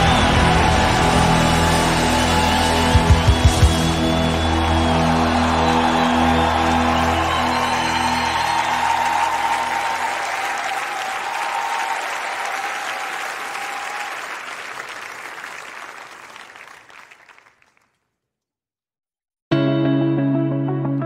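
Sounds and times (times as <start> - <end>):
audience applause: 0.0 - 18.0.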